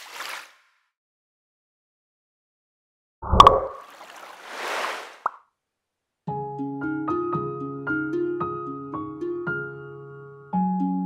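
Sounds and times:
short blip: 3.2 - 3.8
cartoon plop and splash: 3.2 - 5.4.

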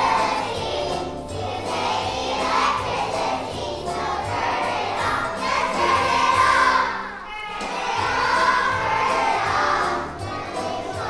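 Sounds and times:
children singing in unison: 0.0 - 11.0
instrumental accompaniment: 0.0 - 11.0.

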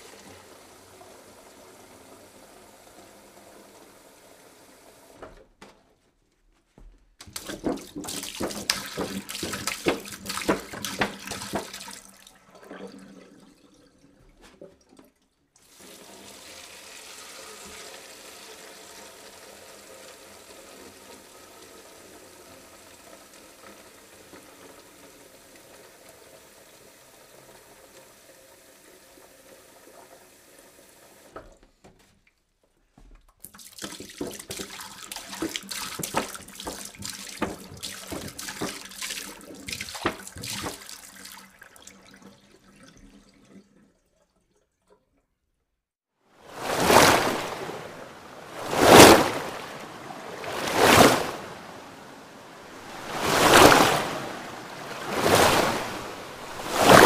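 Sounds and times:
water pouring into a basin: 7.3 - 30.8, 33.4 - 45.2, 46.5 - 51.8, 52.7 - 57.0.

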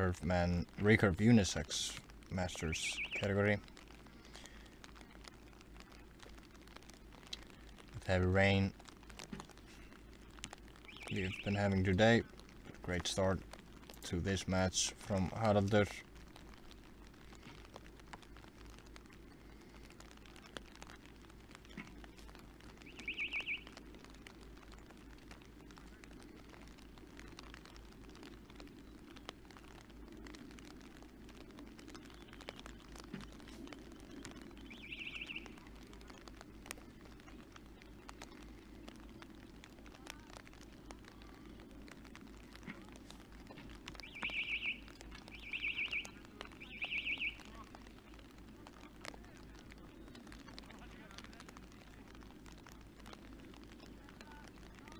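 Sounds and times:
low rumble of rain: 0.0 - 54.9
faint scattered taps: 3.1 - 54.9.

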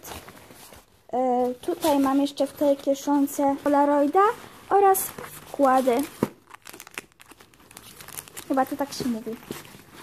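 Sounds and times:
rustling and crinkling: 0.0 - 10.0.

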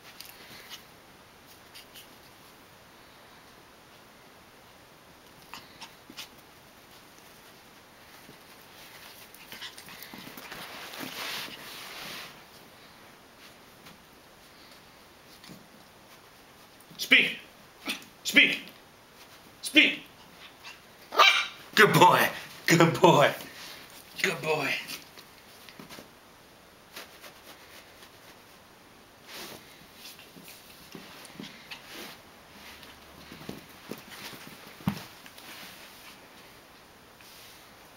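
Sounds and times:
small puppy noises: 5.2 - 6.6, 19.9 - 21.7
puppy scuffling on carpet: 5.4 - 17.0, 19.1 - 19.6, 24.8 - 26.2, 26.8 - 28.6, 29.2 - 37.8.

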